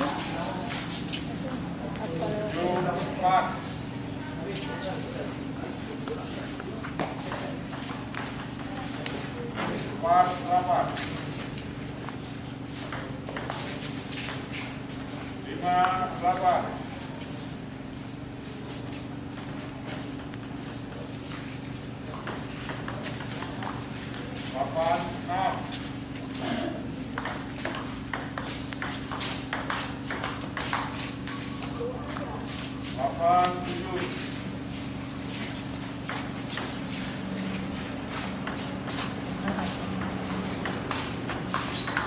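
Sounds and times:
table tennis ball tapping: 12.8 - 13.6, 22.1 - 24.3, 27.2 - 32.7, 36.0 - 36.9, 40.0 - 42.0.

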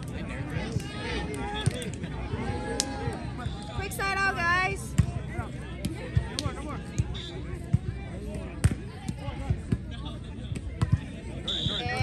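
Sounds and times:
spectators chattering: 0.0 - 12.0.

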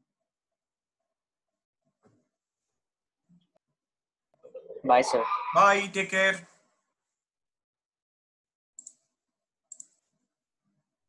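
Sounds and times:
computer mouse clicks: 8.8 - 9.1, 9.7 - 10.2.

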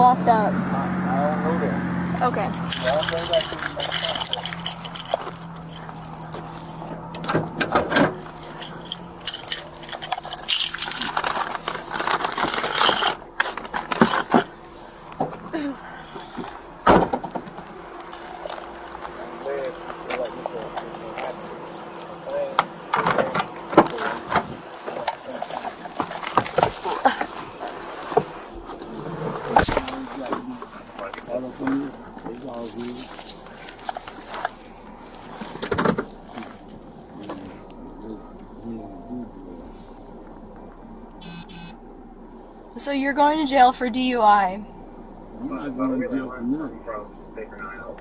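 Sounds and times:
keys jangling: 2.4 - 14.2, 20.0 - 27.4.

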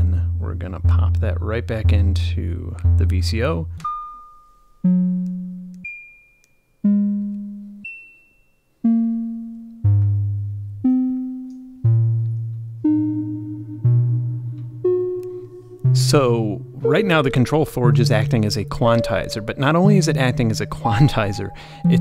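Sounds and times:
synthesizer notes at random pitches: 0.0 - 6.0, 6.8 - 8.0, 8.8 - 22.0.

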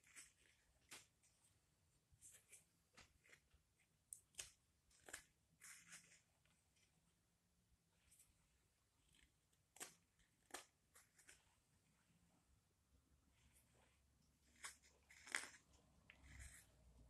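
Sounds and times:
knife scraping wood: 14.4 - 16.8.

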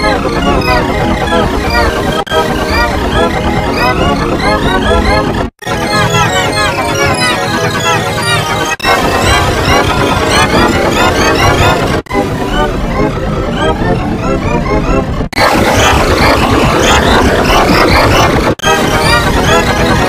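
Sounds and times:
distorted voices: 0.0 - 20.0.

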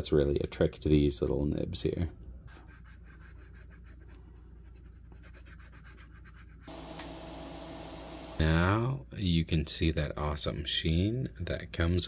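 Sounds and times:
faint hum and hiss: 0.0 - 12.0.

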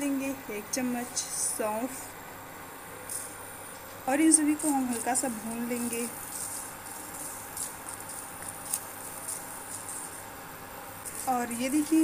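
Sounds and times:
low hiss: 0.0 - 12.0
seeds rattling in a pan: 3.0 - 12.0.

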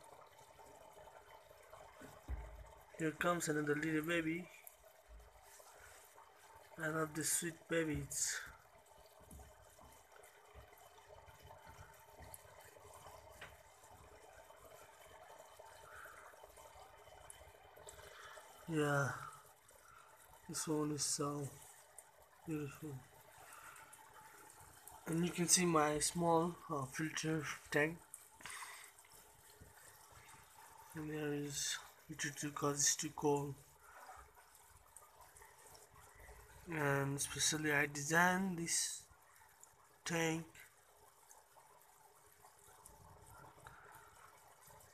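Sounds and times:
aquarium filter running: 0.0 - 44.9
low water trickle: 0.0 - 44.9.

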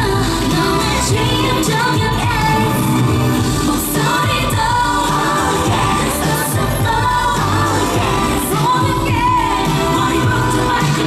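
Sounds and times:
loud backing track: 0.0 - 11.0
women singing into microphones: 0.0 - 11.0.

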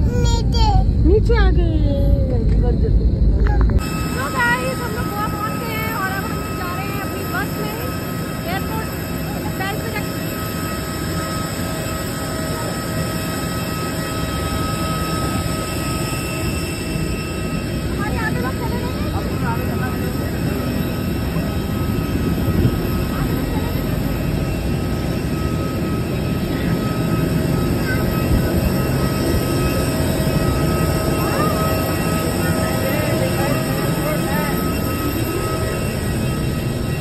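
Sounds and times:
jet aircraft whine and rumble: 0.0 - 37.0.

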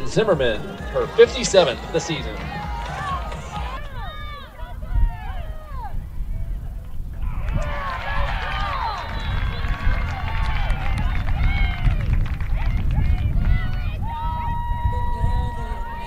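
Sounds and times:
high voices shouting and cheering: 0.0 - 16.0.

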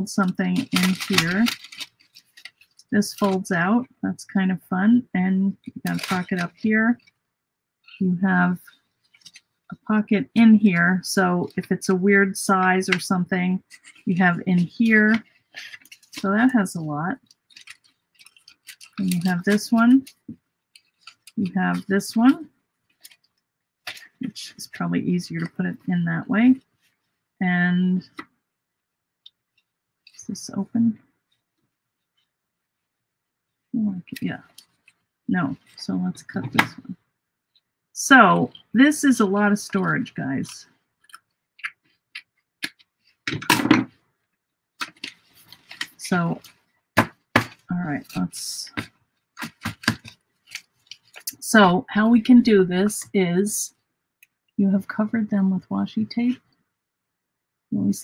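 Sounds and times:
paper crinkling and rustling: 0.2 - 3.4, 5.6 - 7.2, 8.6 - 9.7, 12.9 - 24.2, 34.1 - 35.8, 44.8 - 51.4
scissors snipping paper: 0.6 - 3.4, 17.3 - 21.9.

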